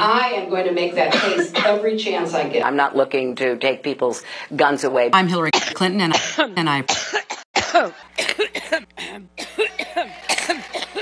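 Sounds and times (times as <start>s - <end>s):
woman coughing: 1.1s - 1.9s, 5.5s - 11.0s.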